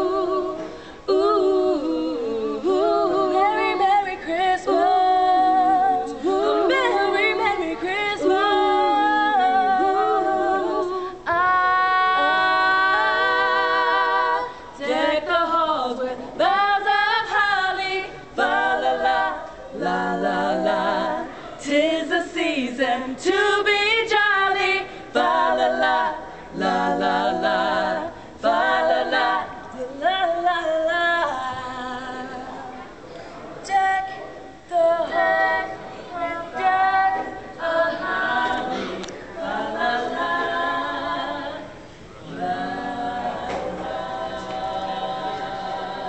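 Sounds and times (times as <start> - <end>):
women singing a cappella: 0.0 - 46.0.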